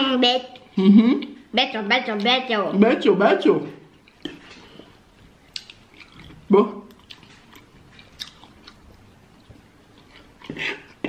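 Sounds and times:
close chewing with wet mouth clicks: 5.5 - 11.0.

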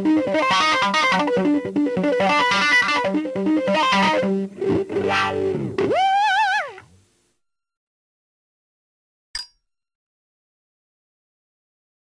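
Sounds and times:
electric guitar played fast: 0.0 - 6.3.

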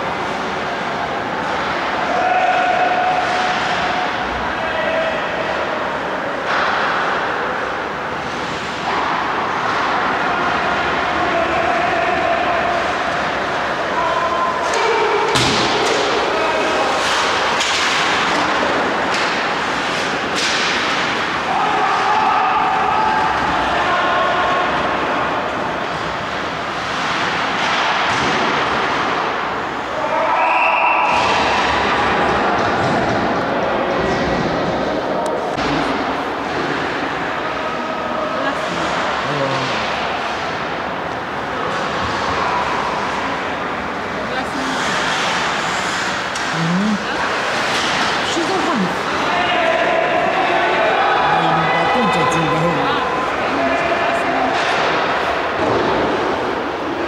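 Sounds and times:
puck and bodies hitting boards: 6.4 - 7.3, 14.7 - 23.8, 25.8 - 29.4, 31.1 - 34.6, 54.5 - 57.0
players shouting: 20.2 - 25.6, 48.3 - 56.6
skates and sticks scraping ice: 44.4 - 48.4.

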